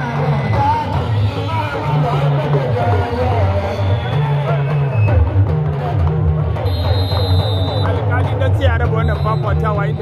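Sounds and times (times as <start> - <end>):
drum music: 0.0 - 10.0.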